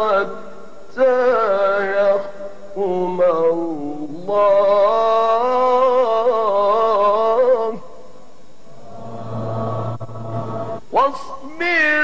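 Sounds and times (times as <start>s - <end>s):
man reciting melodically: 0.0s - 8.0s, 10.8s - 12.0s.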